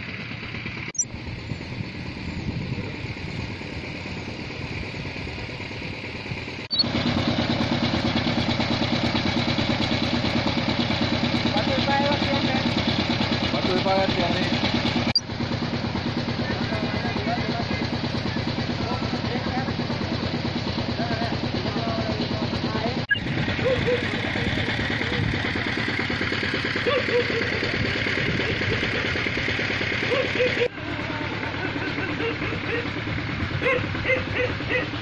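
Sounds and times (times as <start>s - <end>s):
small engine idling: 0.0s - 35.0s.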